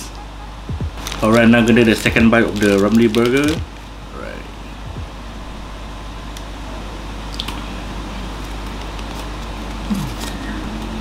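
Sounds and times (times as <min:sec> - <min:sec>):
low room hum: 0:00.0 - 0:11.0
person humming mm: 0:09.9 - 0:10.7.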